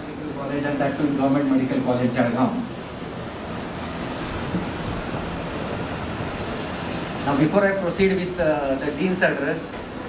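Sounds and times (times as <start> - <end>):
crowded hall background noise: 0.0 - 10.0.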